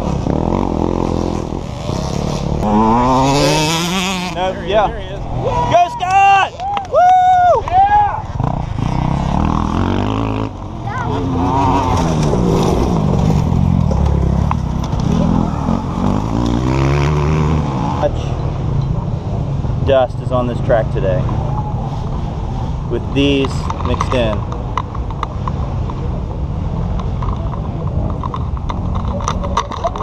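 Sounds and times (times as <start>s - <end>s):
dirt bikes revving and passing: 0.0s - 30.0s.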